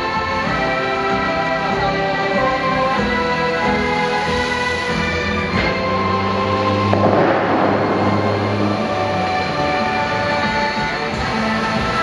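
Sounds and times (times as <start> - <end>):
orchestral music: 0.0 - 12.0
water cannon boom: 6.9 - 9.9.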